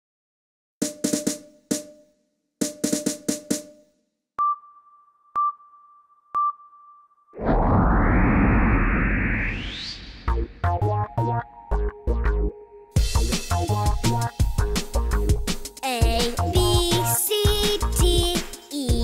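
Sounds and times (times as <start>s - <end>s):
countdown beeps: 4.4s - 7.1s
rocket blast rumble and whoosh: 7.4s - 10.7s.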